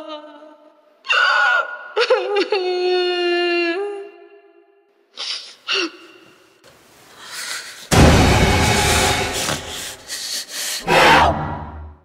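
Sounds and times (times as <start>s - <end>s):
loud hit with deep boom: 7.9s - 9.8s.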